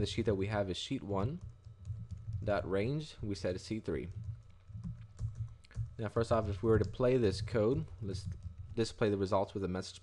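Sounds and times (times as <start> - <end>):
low steady hum: 0.0 - 10.0
computer keyboard typing: 1.2 - 9.2.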